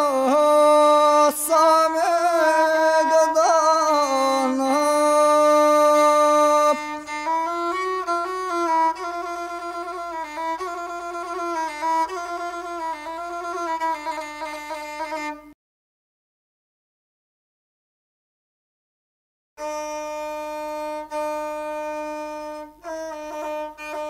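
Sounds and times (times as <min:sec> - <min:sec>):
bowed single-string fiddle: 0:00.0 - 0:15.6, 0:19.6 - 0:24.0.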